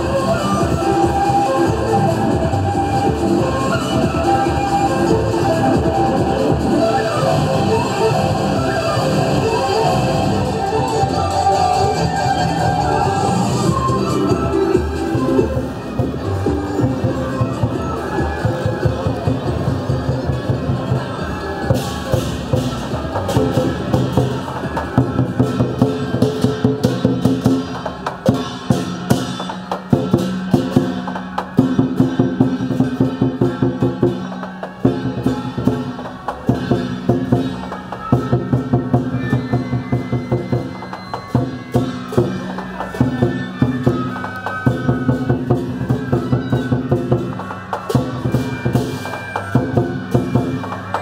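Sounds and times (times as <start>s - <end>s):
held opera-style melody: 0.0s - 19.3s
fast wood-block and drum beats: 11.8s - 51.0s.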